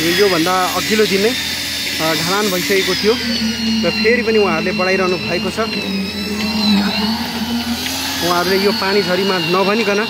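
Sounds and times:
high whine: 0.0s - 10.0s
machinery engine humming: 0.0s - 10.0s.

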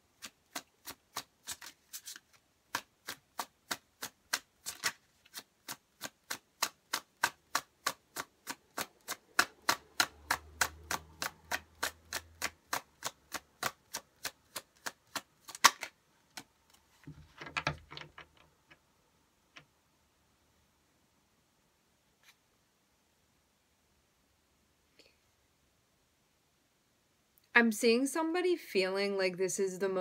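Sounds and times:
cards being shuffled: 0.2s - 18.4s.

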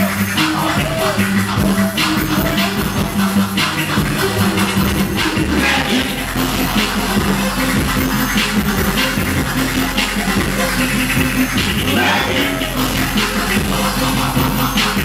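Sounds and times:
backing beat: 0.0s - 15.0s
turntable scratching: 0.0s - 15.0s.

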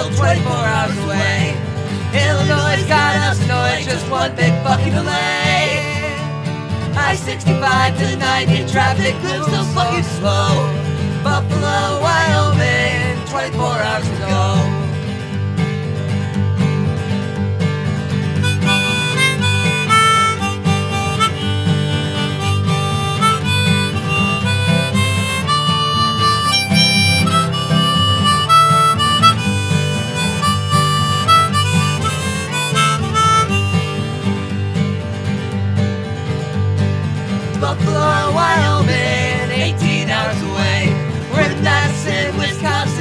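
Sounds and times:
strummed acoustic guitar: 0.0s - 43.0s.

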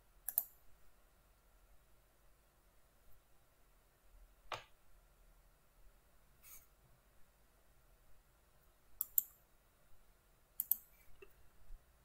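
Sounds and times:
computer mouse clicks: 0.2s - 0.6s, 9.0s - 9.4s, 10.6s - 11.4s.

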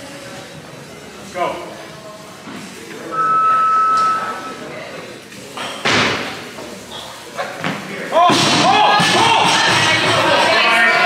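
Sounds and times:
onlookers shouting and cheering: 8.4s - 11.0s.

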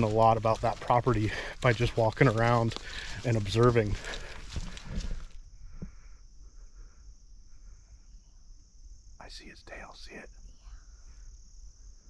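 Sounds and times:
faint rustling: 0.0s - 6.2s
crickets chirping: 0.0s - 12.0s.

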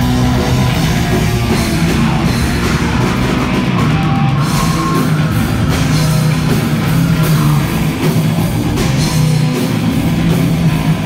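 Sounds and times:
distorted electric guitar: 0.0s - 11.0s
drum kit: 0.0s - 11.0s.

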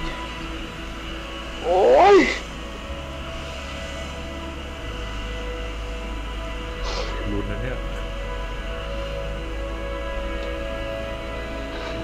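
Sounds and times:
soft background music: 0.0s - 12.0s
person's whiny cry: 1.6s - 2.4s.

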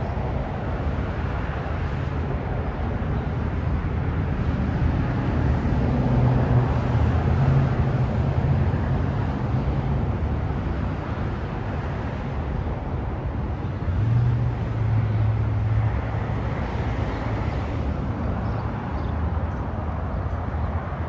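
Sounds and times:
low engine hum: 0.0s - 21.0s
road traffic rumble: 0.0s - 21.0s.

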